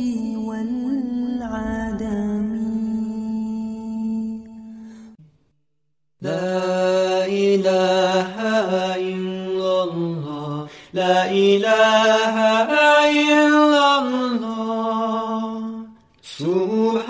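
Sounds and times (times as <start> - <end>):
person singing devotional chant: 0.0 - 5.2, 6.2 - 17.0.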